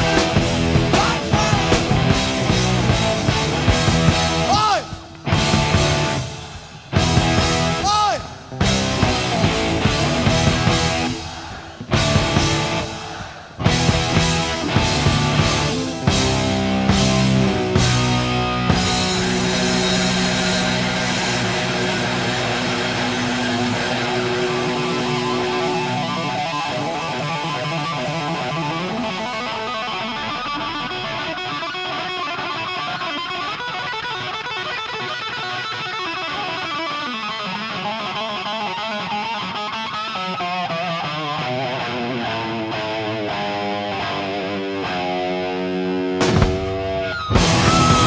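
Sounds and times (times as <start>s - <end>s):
lower band accompaniment: 0.0s - 31.4s, 46.2s - 48.0s
distorted electric guitar solo: 13.6s - 48.0s.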